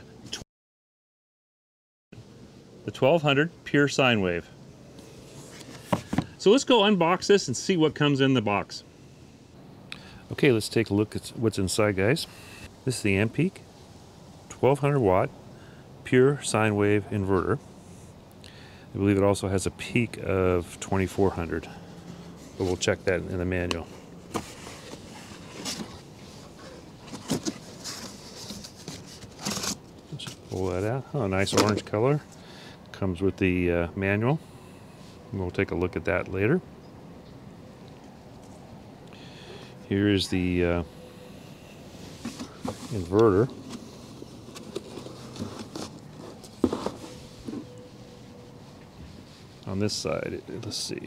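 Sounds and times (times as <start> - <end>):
cardboard rustling and scraping: 5.2 - 6.4, 24.2 - 31.9, 41.9 - 50.0
cardboard box flaps scraping: 42.1 - 47.7.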